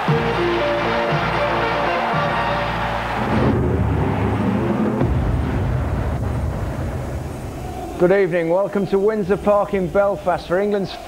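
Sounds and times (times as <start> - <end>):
television title music: 0.0 - 8.1.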